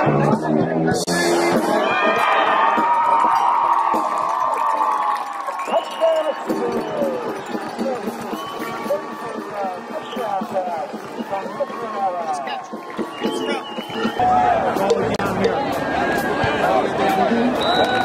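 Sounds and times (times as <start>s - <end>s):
stadium crowd cheering and shouting: 0.0s - 18.0s.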